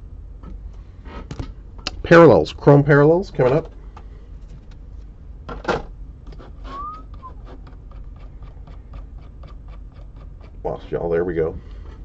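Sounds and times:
short rising chirp: 6.7s - 7.4s.

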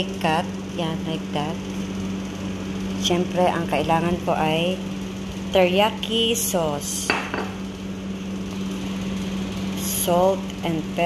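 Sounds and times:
steady low hum: 0.0s - 11.0s
kitchenware knocking on stone: 7.1s - 7.6s.

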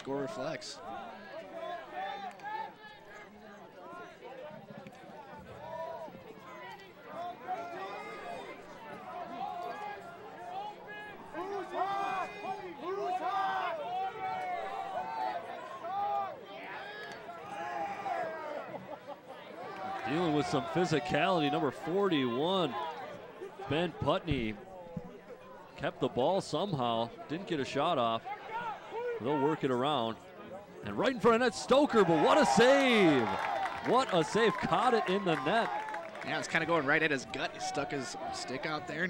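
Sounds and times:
crowd chatter: 0.0s - 39.0s
players calling out and shouting: 19.4s - 39.0s.

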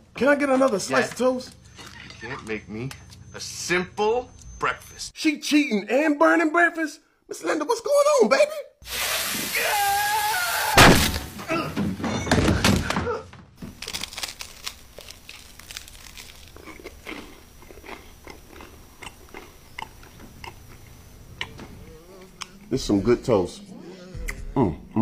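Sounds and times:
person crying out: 9.4s - 11.8s
chewing crisp toast: 13.7s - 22.7s.

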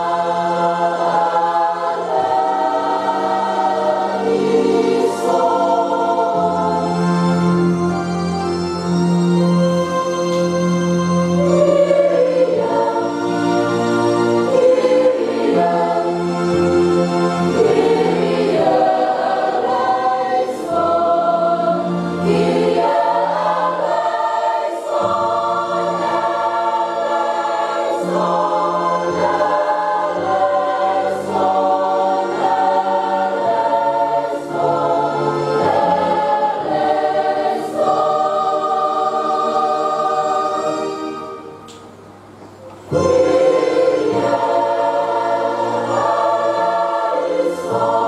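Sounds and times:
choir and congregation singing hymn: 0.0s - 41.6s, 42.7s - 48.0s
held accompaniment notes: 0.0s - 48.0s.

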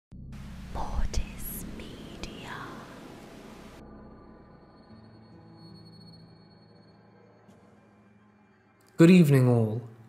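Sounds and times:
low rumble: 0.1s - 4.8s
hissing static noise: 0.4s - 3.8s
whispered voice: 0.8s - 3.0s.

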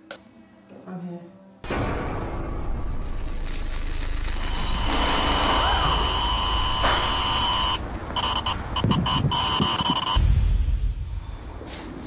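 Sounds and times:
high-pitched whine: 2.6s - 10.3s.

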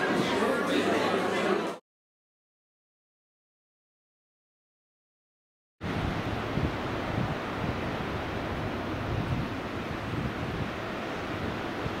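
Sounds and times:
wind buffeting microphone: 5.8s - 12.0s.

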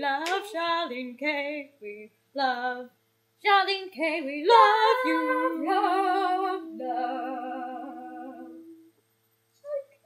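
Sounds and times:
women singing a held note: 4.5s - 9.0s.

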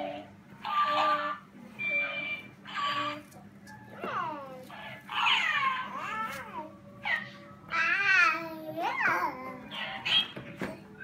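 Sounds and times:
talking toy electronic sounds: 0.0s - 6.3s, 8.9s - 11.0s.

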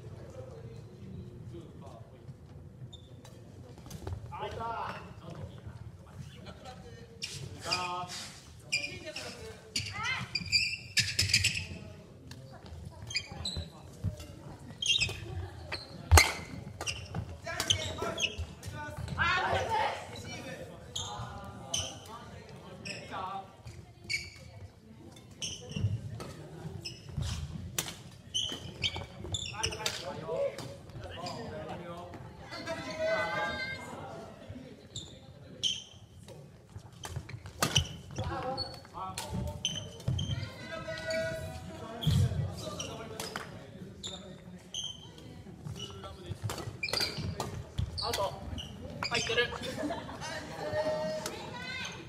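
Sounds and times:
indistinct voices in a hall: 0.0s - 52.0s
sneakers squeaking: 2.3s - 33.9s, 34.8s - 52.0s.

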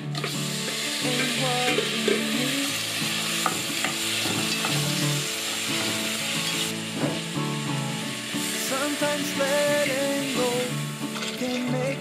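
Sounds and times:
shrimp shells sizzling in oil: 0.0s - 11.8s.

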